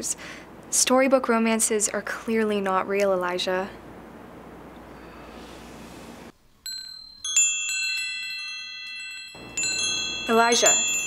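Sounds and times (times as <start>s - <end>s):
shimmering wind chimes: 6.6s - 11.0s.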